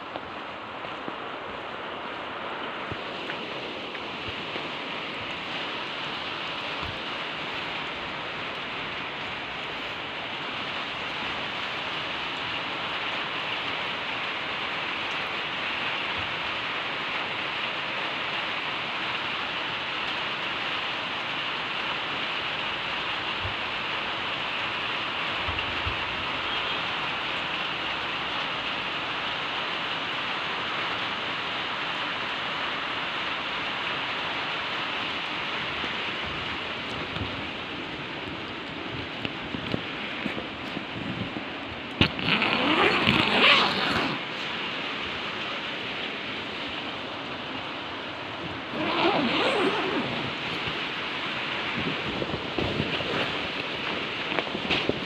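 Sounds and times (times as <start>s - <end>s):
steady rain hiss: 0.0s - 55.0s.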